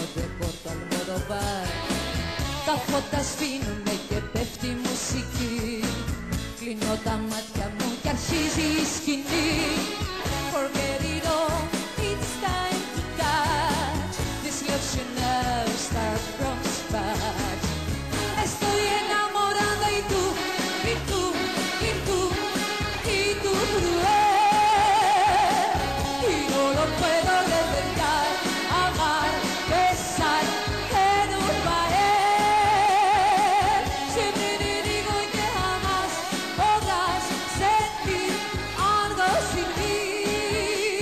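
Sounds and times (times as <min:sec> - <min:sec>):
band playing pop song: 0:00.0 - 0:41.0
woman singing: 0:00.0 - 0:41.0.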